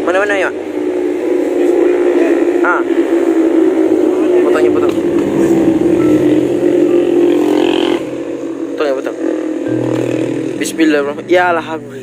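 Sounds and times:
vehicle engine running: 0.0s - 12.0s.

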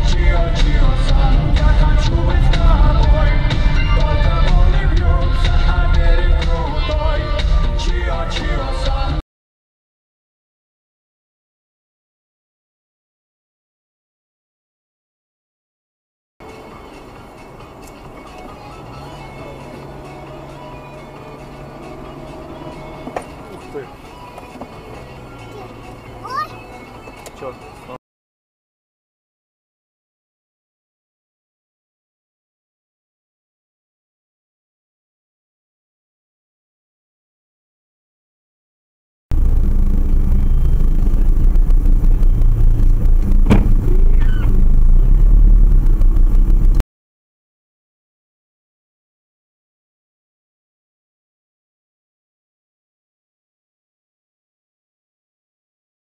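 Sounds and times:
car engine and tyres drone: 0.0s - 9.2s, 16.4s - 28.0s, 39.3s - 46.8s
faint car radio music: 16.4s - 28.0s, 39.4s - 46.8s
sharp knock: 43.4s - 44.0s.

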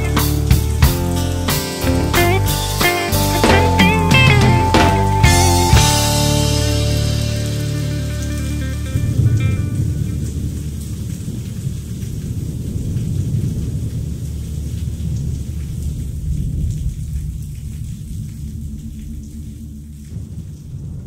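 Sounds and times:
rock band playing: 0.0s - 9.8s
low rumbling thunder: 1.9s - 21.0s.

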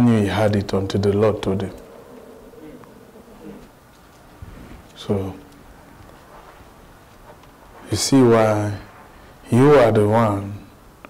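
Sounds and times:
faint murmured voice: 1.6s - 3.8s.

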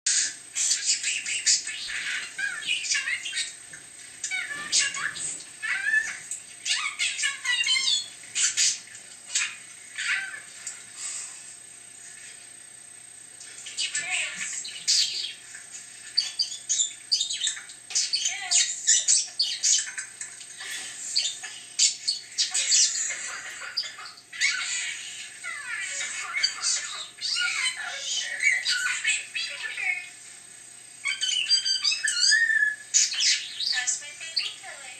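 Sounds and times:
budgerigar chattering and warbling: 0.1s - 3.6s, 13.8s - 15.4s, 16.0s - 20.1s, 20.8s - 30.0s, 31.0s - 34.6s.

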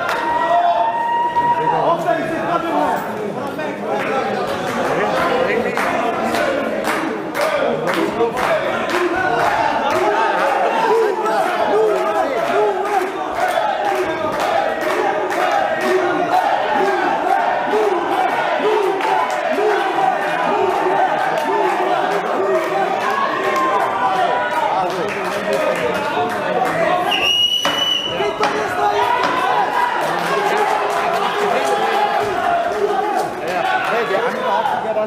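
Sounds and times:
spectators shouting: 7.4s - 34.9s.

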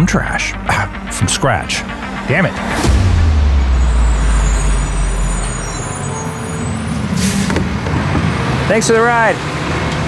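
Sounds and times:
air brakes hissing: 5.3s - 7.8s.

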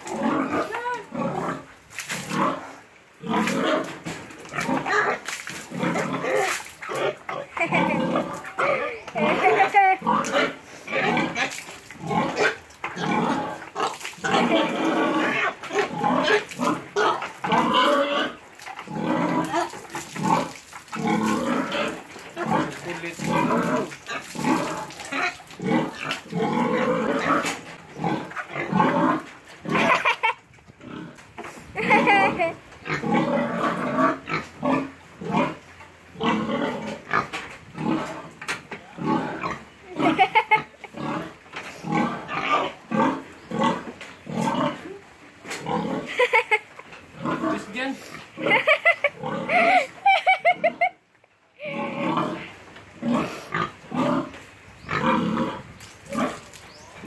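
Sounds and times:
pig grunting and squealing: 0.0s - 51.0s, 51.6s - 57.0s.

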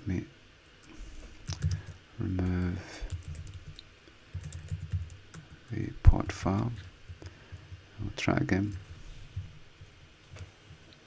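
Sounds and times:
computer keyboard typing: 1.4s - 2.0s, 3.1s - 7.7s.

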